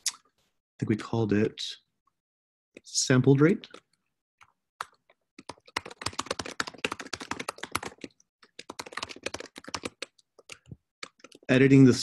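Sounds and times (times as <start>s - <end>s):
fast typing on keyboard: 4.8s - 11.6s.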